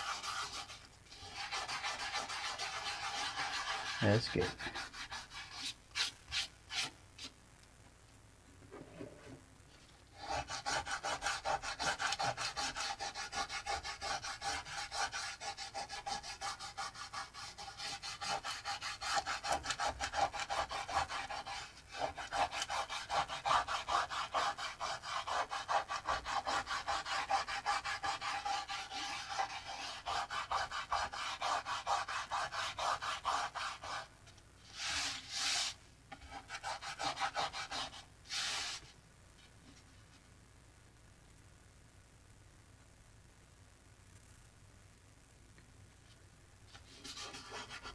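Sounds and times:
fingertips rubbing paper: 0:00.0 - 0:07.3, 0:10.2 - 0:34.1.

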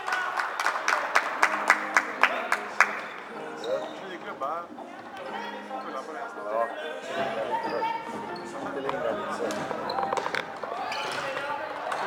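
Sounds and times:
floorball sticks clacking: 0:08.8 - 0:12.0.

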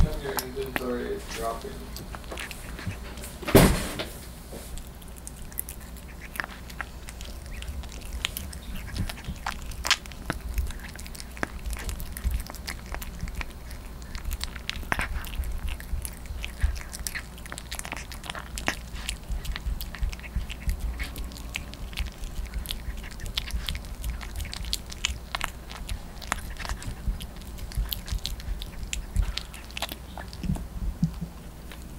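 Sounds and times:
puppy chewing and licking: 0:00.0 - 0:31.9.

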